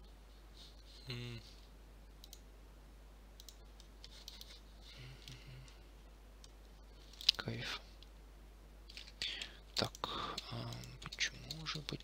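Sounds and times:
person humming: 1.0s - 1.6s
computer mouse clicks: 2.2s - 2.4s, 3.4s - 4.6s, 6.4s - 7.4s.

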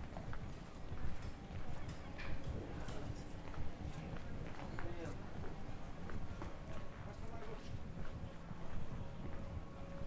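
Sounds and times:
faint voices of passers-by: 0.0s - 10.0s
footsteps on stone pavement: 0.0s - 10.0s.

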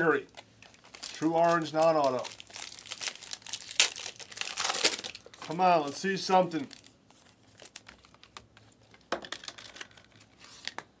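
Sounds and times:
cards crinkling and clicking: 0.3s - 10.9s.

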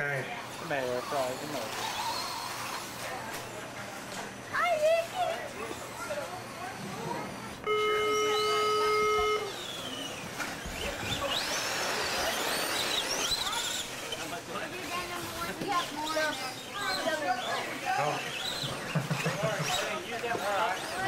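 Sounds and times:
rc car motors whining: 0.0s - 21.0s
electronic buzzer tone: 7.6s - 9.6s.

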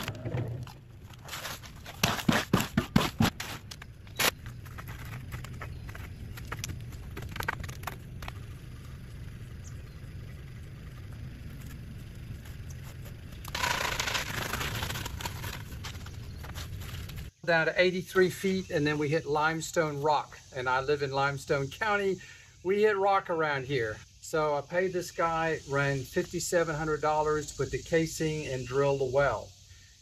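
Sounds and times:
wet concrete scraping: 0.0s - 8.9s, 12.4s - 17.3s.

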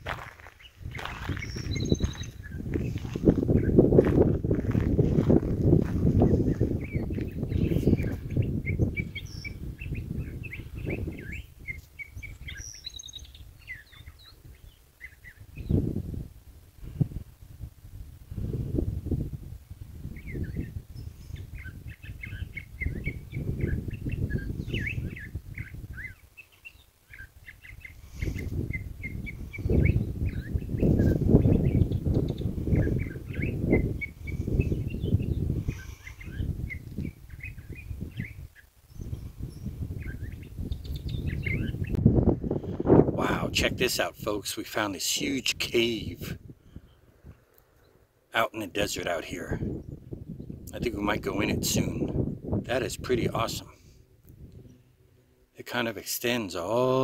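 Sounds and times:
wind rumbling on microphone: 0.0s - 57.0s
small bird chirping: 0.3s - 3.8s, 6.1s - 16.0s, 20.0s - 42.0s, 46.8s - 48.1s, 49.0s - 50.8s.

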